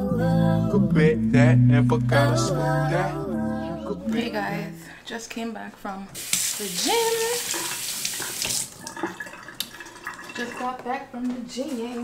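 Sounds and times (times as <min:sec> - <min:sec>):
tap running into a sink: 0:07.4 - 0:10.2.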